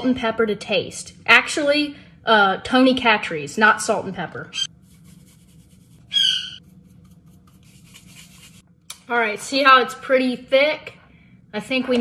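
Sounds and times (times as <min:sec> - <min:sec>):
high-pitched squeak: 0:06.1 - 0:06.6.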